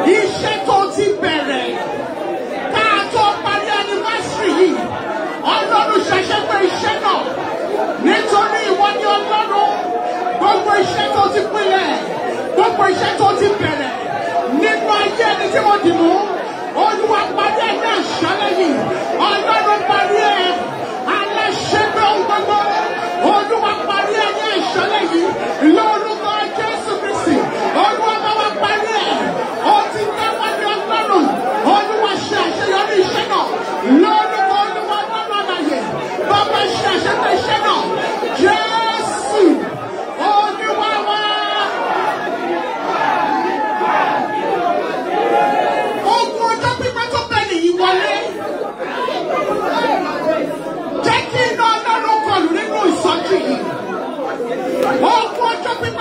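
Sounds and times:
congregation praying aloud: 0:00.0 - 0:56.0.

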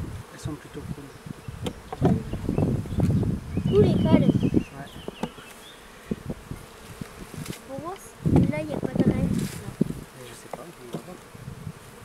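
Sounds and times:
honeybees buzzing: 0:00.0 - 0:12.0
hive tool knocks and clicks: 0:01.6 - 0:02.2, 0:05.0 - 0:05.6, 0:10.5 - 0:11.2.

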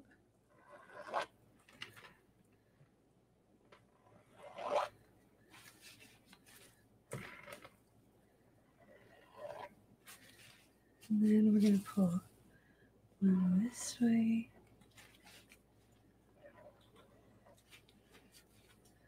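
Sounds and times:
canvas scraping and rustling: 0:08.9 - 0:12.2.

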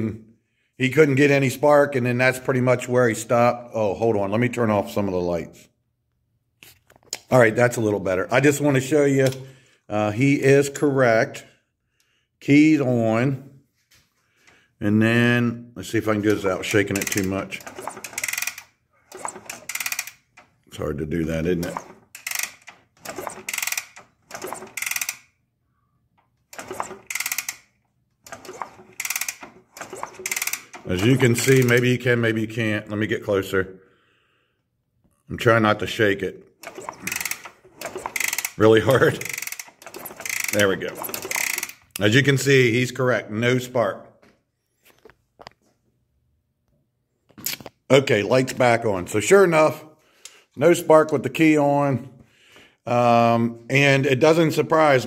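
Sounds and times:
clicks and rattles from handling: 0:16.2 - 0:20.7, 0:21.4 - 0:25.3, 0:26.2 - 0:31.9, 0:36.6 - 0:42.1
engine kickstarter ratcheting whir: 0:16.3 - 0:20.6, 0:21.4 - 0:25.4, 0:26.2 - 0:31.8, 0:36.6 - 0:42.0.

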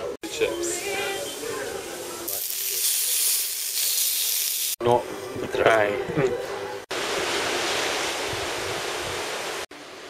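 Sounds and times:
steady high hiss: 0:00.3 - 0:04.8.

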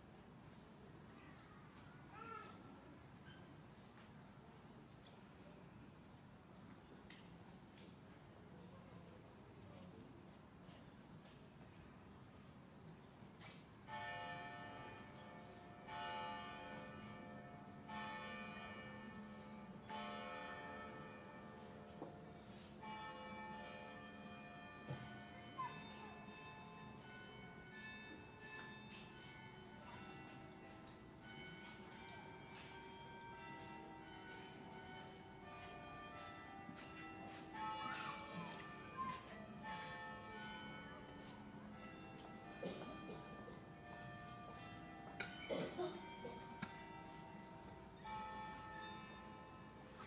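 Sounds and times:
church bell striking: 0:13.8 - 0:50.0.

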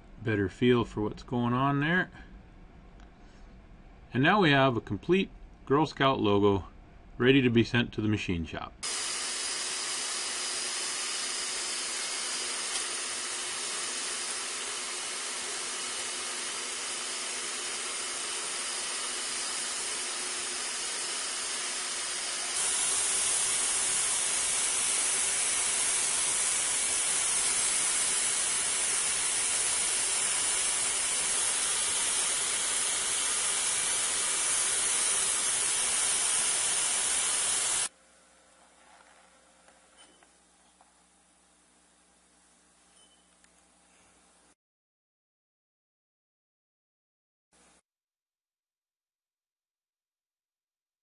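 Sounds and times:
vacuum-forming machine air hiss: 0:08.8 - 0:37.9.

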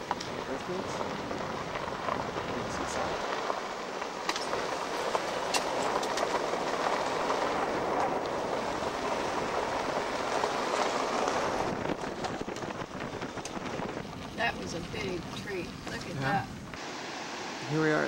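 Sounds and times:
vehicle road and wind noise: 0:00.0 - 0:18.0.

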